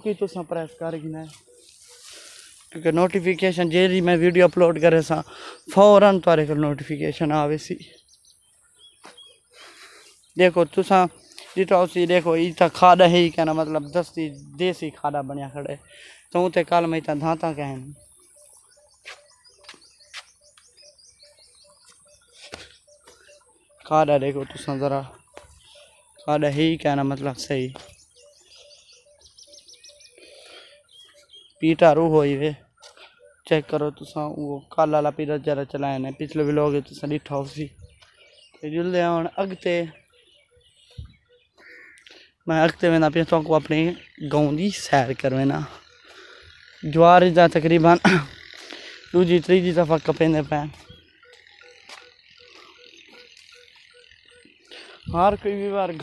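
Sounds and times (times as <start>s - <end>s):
short lower bird calls: 0.0s - 34.8s, 35.9s - 56.0s
frogs croaking: 0.0s - 56.0s
small birds chirping: 0.0s - 56.0s.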